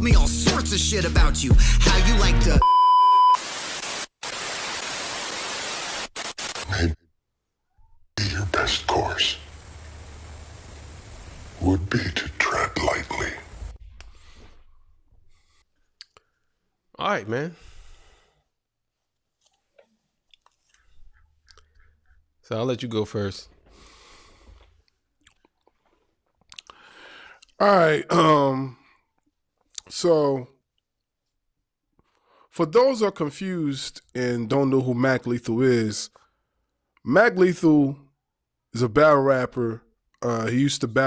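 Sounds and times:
white-noise static hiss: 3.4 - 6.6, 8.4 - 13.7
faint mouth clicks: 16.0 - 16.3, 20.3 - 22.2, 26.4 - 27.6.

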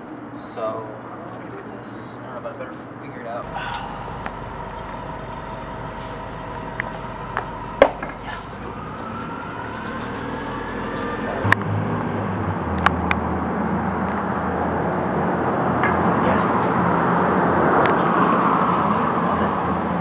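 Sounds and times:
city street noise: 0.0 - 20.0
vehicle engine approaching: 3.4 - 20.0.

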